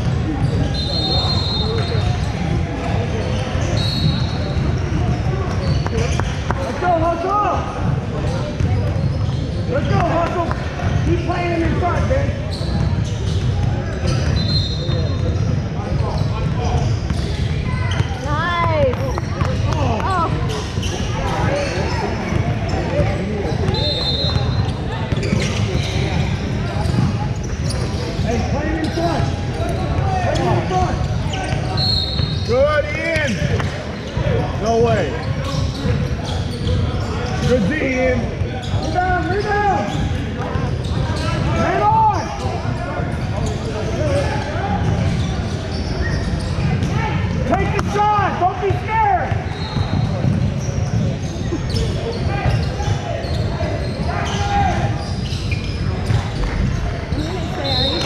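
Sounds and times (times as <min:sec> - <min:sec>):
sneaker squeaks: 0:00.0 - 0:58.0.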